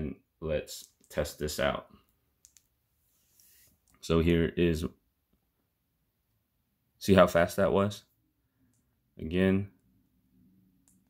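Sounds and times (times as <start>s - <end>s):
faint clicks: 2.4s - 2.7s
soft rustle: 2.9s - 3.9s.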